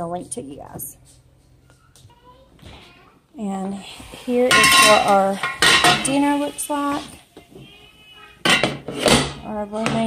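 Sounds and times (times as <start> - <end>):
metal cookware clattering: 4.3 - 7.2, 8.4 - 10.0.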